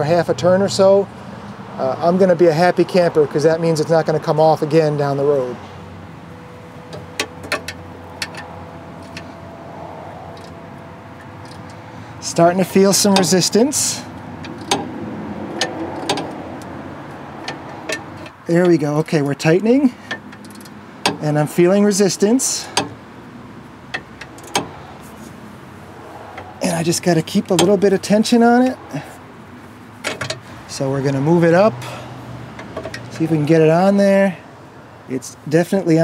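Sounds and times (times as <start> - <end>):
steady background noise: 0.0 - 36.0
metal wrench clinking: 6.9 - 9.3, 11.2 - 16.4, 17.4 - 21.4
ratchet wrench clicks: 20.0 - 21.2.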